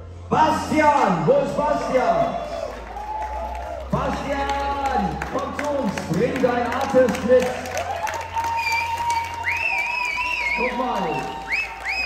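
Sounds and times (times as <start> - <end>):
audience applauding and cheering: 1.0 - 12.0
high wavering cheer: 1.6 - 5.2, 7.3 - 12.0.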